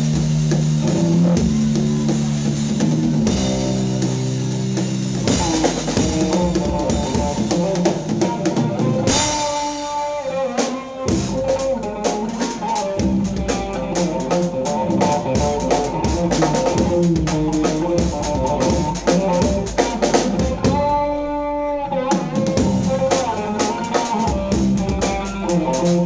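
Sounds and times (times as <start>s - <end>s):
drum kit with cymbals: 0.0s - 26.0s
electric guitar: 0.0s - 26.0s.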